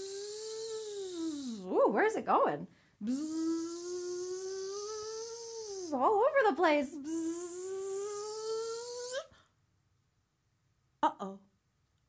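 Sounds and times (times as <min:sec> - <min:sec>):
woman imitating buzzing bee: 0:00.0 - 0:01.8, 0:03.0 - 0:06.2, 0:06.9 - 0:09.3.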